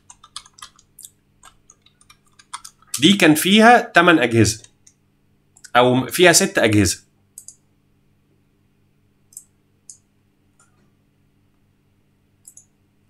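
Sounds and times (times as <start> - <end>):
computer mouse clicks: 0.0 - 3.0, 7.4 - 7.6, 9.3 - 10.8, 12.4 - 12.8.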